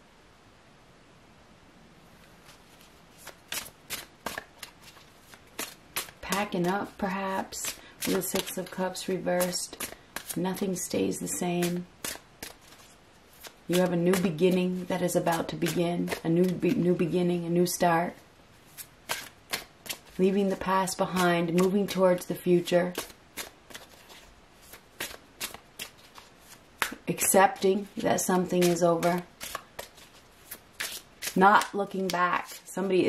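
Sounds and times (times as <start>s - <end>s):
cards snapping and flicking: 3.2s - 6.2s, 11.6s - 12.8s, 19.1s - 20.1s, 25.0s - 27.0s, 28.6s - 32.2s.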